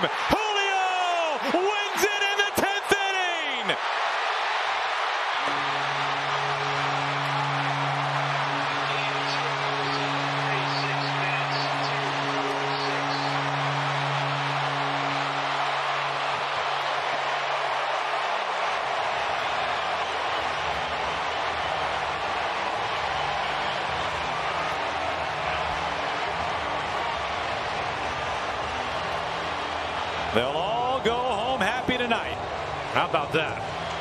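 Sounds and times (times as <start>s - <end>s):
crowd cheering and shouting: 0.0s - 34.0s.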